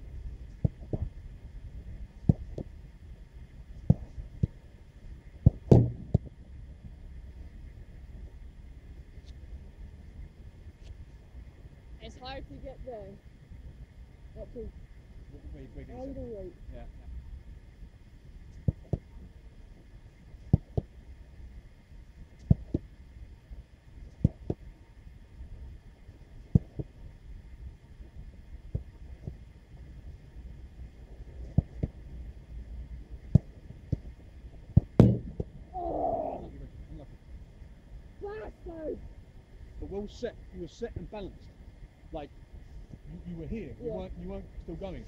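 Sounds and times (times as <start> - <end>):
footballs struck with thuds: 0.6 - 1.1, 2.2 - 2.8, 3.8 - 4.6, 5.4 - 6.3, 18.6 - 19.1, 20.5 - 20.9, 22.4 - 22.8, 24.2 - 24.6, 26.5 - 26.9, 33.2 - 34.1, 34.7 - 35.6.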